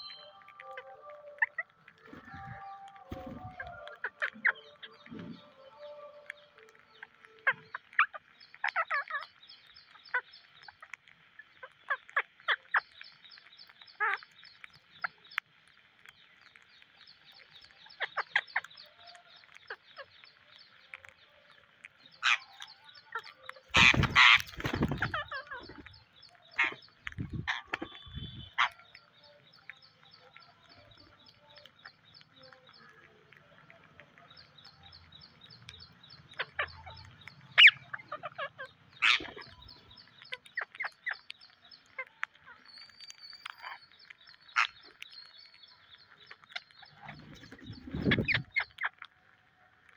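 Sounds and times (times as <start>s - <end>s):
parakeets squawking and chirping: 0.0s - 49.9s.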